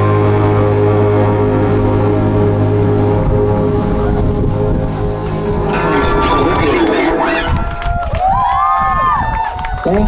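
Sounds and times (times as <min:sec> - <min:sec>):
band holding sustained chord: 0:00.0 - 0:08.0
low bass note: 0:00.0 - 0:08.3.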